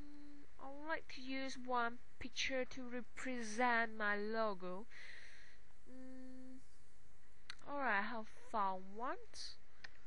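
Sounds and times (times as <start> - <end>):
woman humming: 0.0 - 0.9, 5.9 - 6.8
woman speaking: 0.0 - 4.9, 5.9 - 6.6, 7.5 - 9.6.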